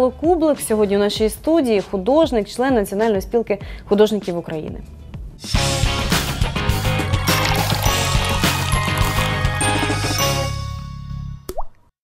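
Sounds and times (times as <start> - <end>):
water-drop plop effect: 11.5 - 11.9.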